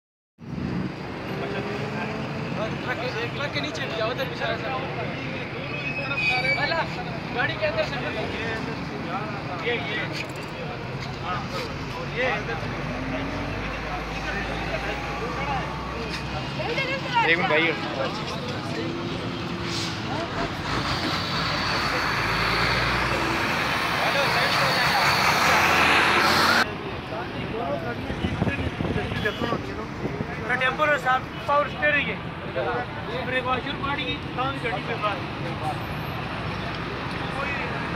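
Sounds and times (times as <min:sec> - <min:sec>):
road traffic: 0:00.4 - 0:37.9
people's voices: 0:01.1 - 0:37.9.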